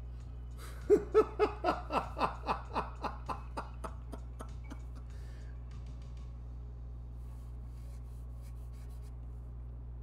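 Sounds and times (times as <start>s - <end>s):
person laughing: 0.6s - 5.1s.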